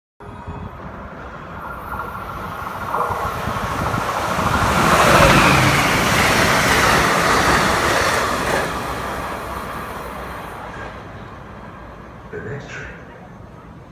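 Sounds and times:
train passing at speed: 0.2 - 13.9.

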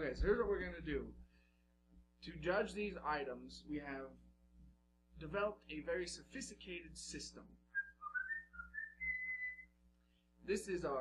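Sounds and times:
person whistling a tune: 7.7 - 9.7.

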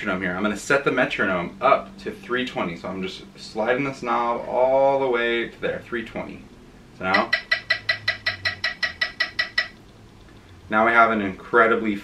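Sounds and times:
fast metronome clicks from phone: 7.1 - 10.6.

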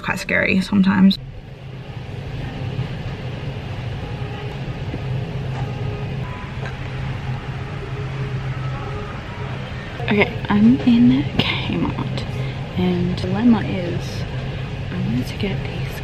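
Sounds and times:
low rumbling hum: 0.0 - 16.0
faint voices: 3.8 - 16.0.

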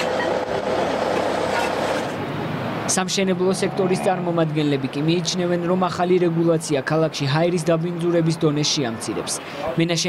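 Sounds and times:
construction site mechanical din: 0.0 - 3.0.

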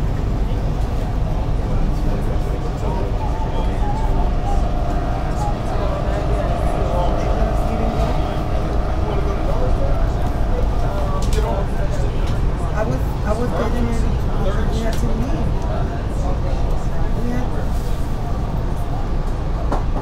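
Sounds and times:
faint voices: 0.0 - 20.0
train wheels rumbling on track: 0.0 - 20.0
faint motor whine: 0.4 - 12.9.

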